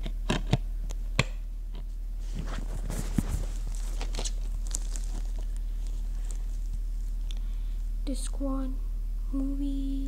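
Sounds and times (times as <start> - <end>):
steady low hum: 0.0 - 10.0
knocks and rustles of handling: 1.7 - 7.3.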